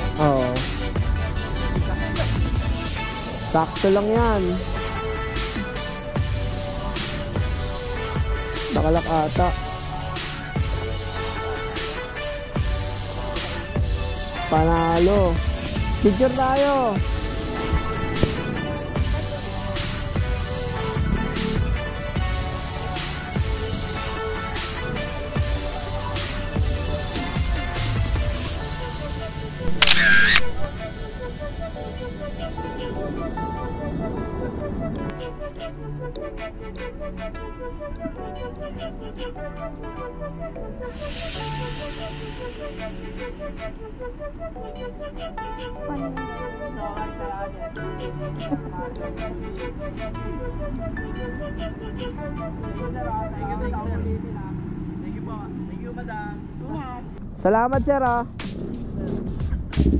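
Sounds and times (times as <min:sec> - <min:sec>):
people talking: 0:00.0 - 0:02.4, 0:03.5 - 0:04.6, 0:08.7 - 0:09.6, 0:14.5 - 0:17.0, 0:45.6 - 0:50.4, 0:52.8 - 0:58.3
low rumble of vehicle engines: 0:00.0 - 0:29.6, 0:45.6 - 0:59.9
background music: 0:00.0 - 0:59.9
phone camera shutter: 0:29.7 - 0:30.6.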